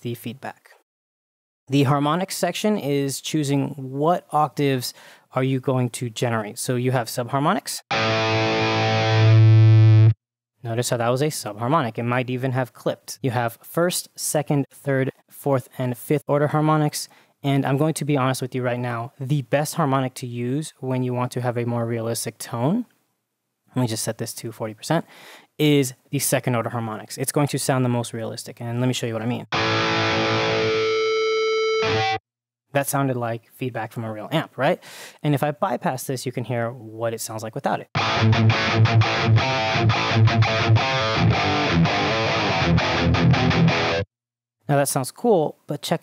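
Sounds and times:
distorted electric guitar note: 7.9 - 10.2, 29.5 - 32.2, 38.0 - 44.0
guitar feedback tone: 7.9 - 10.2, 29.5 - 32.2, 38.0 - 44.0.

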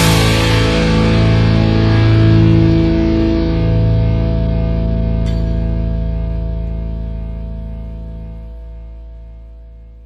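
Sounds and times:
rock music: 0.0 - 9.9
distorted electric guitar chord ringing: 0.0 - 10.0.

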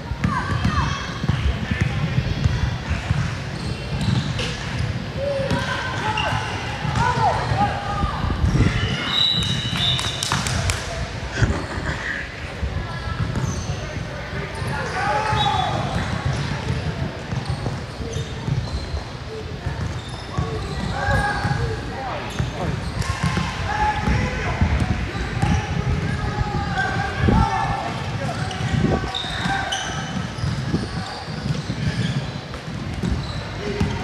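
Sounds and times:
basketball bouncing on court: 0.1 - 7.7, 13.2 - 13.7, 15.3 - 18.8, 22.3 - 26.2, 27.8 - 34.0.

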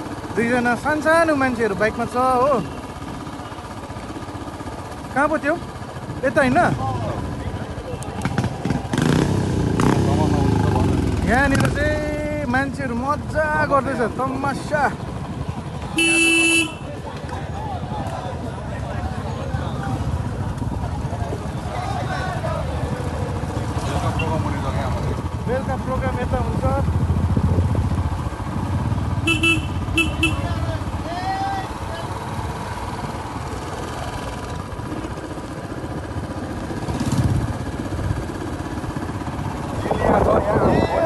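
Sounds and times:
motorcycle engine rumble: 0.0 - 41.0
road and wind noise: 0.0 - 41.0
vehicle horn beeps: 16.0 - 16.9, 29.2 - 30.6.

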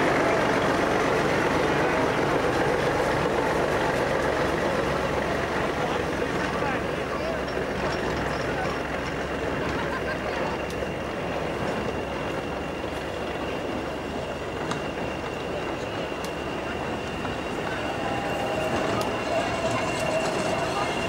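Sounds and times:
railway wagons rolling on track: 0.0 - 21.0.

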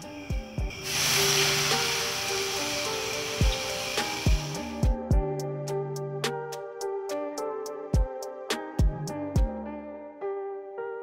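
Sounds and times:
steam hissing: 0.0 - 4.8
background music with low drums: 0.0 - 10.1.

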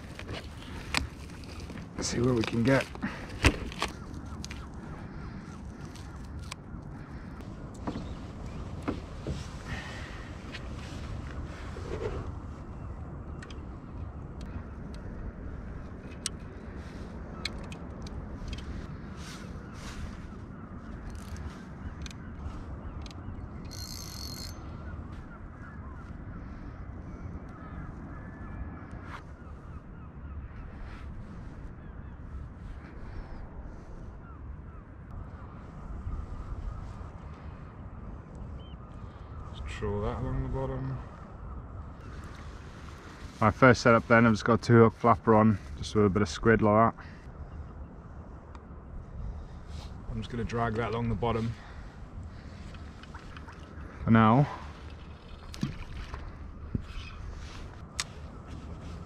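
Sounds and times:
fishing tackle clicks and rustles: 0.0 - 6.9, 17.2 - 24.6, 52.2 - 54.0, 54.6 - 59.0
water: 0.0 - 29.7, 35.6 - 43.5, 49.2 - 59.0
wind: 0.0 - 59.0.

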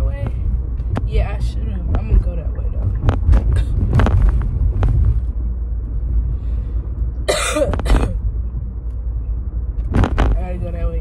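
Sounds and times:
car driving rumble: 0.0 - 11.0
person coughing: 7.3 - 8.2.

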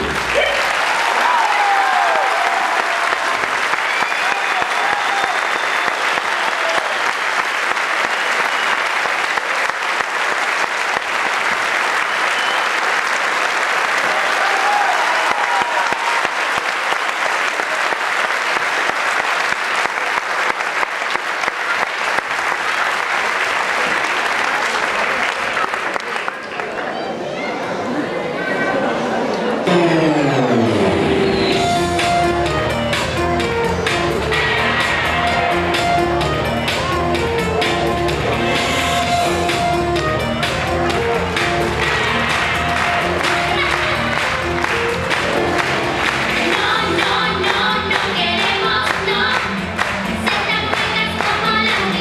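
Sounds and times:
audience applauding: 0.0 - 27.1, 34.4 - 52.0
calls from the crowd: 0.0 - 31.6.

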